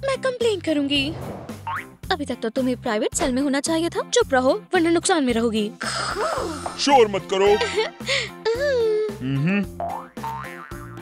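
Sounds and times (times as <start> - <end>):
playful background music: 0.0 - 11.0.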